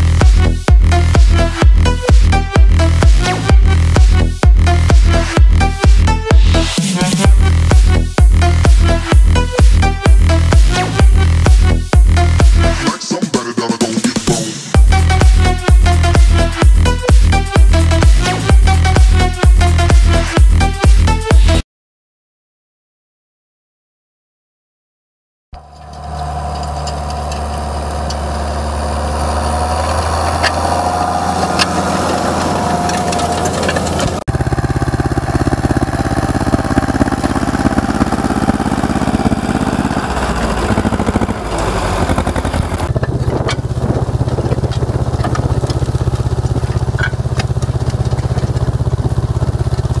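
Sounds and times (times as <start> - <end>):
tractor diesel engine chugging: 0.0 - 12.9, 14.1 - 21.6, 25.6 - 50.0.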